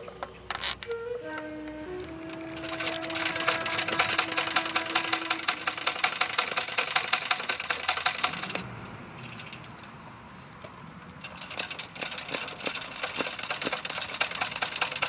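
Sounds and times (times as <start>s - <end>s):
sewing machine stitching: 2.3s - 8.6s, 11.2s - 15.0s.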